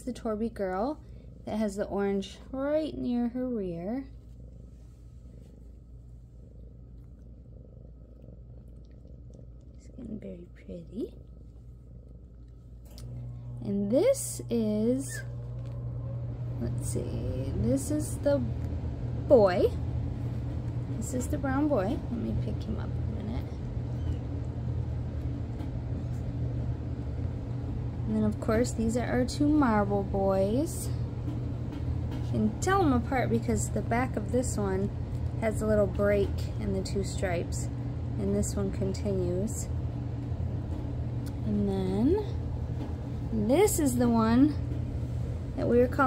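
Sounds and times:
cat purring: 0.0s - 46.0s.

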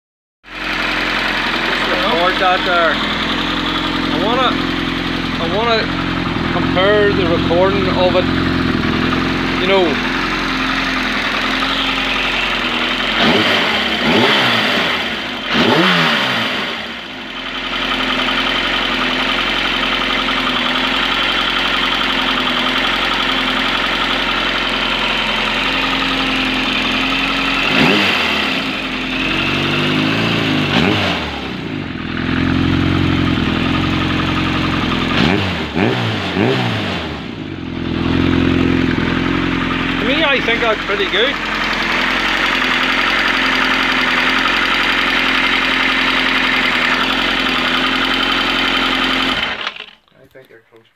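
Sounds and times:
motorcycle engine idling and revving: 0.4s - 50.0s.

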